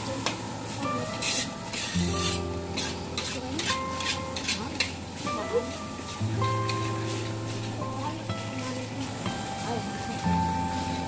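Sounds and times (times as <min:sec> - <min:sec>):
rice sizzling: 0:00.0 - 0:11.0
metal spatula scraping a wok: 0:00.8 - 0:08.0.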